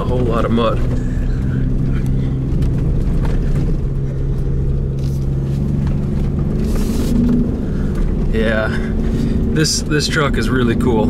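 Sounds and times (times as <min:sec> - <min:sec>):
truck engine running hard: 0:00.0 - 0:11.0.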